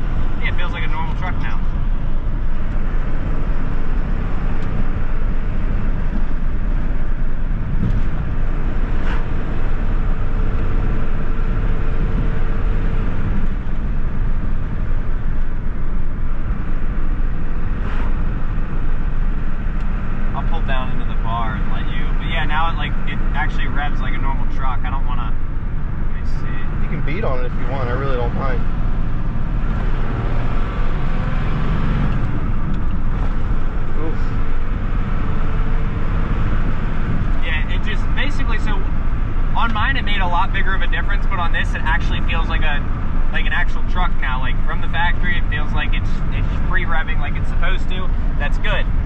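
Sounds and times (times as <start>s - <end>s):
diesel engine rumble: 0.0s - 49.0s
tyre and road noise: 0.0s - 49.0s.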